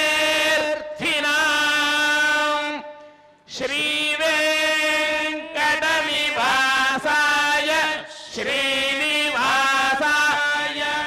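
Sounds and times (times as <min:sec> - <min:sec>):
men chanting into microphones: 0:00.0 - 0:02.9, 0:03.5 - 0:11.0.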